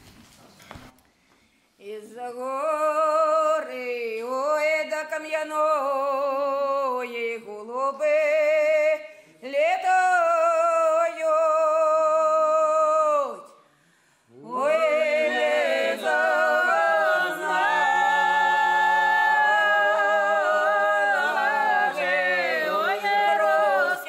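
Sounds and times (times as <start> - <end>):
unaccompanied folk singing: 14.3 - 24.0.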